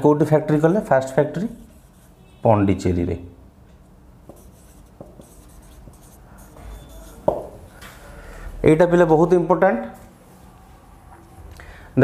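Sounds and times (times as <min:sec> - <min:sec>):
marker writing on whiteboard: 0:00.3 - 0:02.4, 0:04.2 - 0:07.7
marker tip tapping board: 0:04.3 - 0:06.1, 0:06.9 - 0:07.6.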